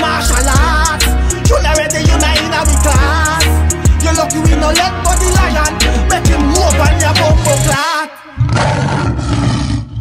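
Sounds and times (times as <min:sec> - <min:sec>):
lion roaring: 0:08.4 - 0:10.0.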